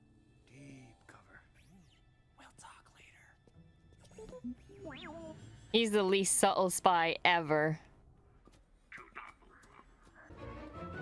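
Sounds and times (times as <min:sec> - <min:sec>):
faint whisper: 0:00.5 - 0:03.4.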